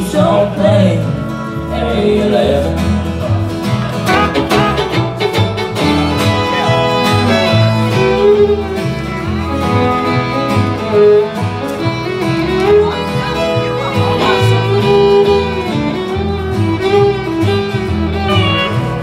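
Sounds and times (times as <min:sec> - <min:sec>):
pulsing bass line: 0:00.0 - 0:19.0
strummed acoustic guitar: 0:00.0 - 0:19.0
bowed fiddle: 0:03.9 - 0:19.0.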